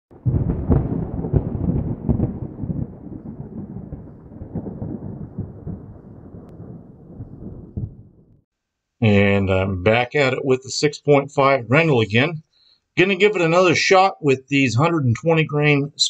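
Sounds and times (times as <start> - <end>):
thunder rolling: 0.1 - 8.4.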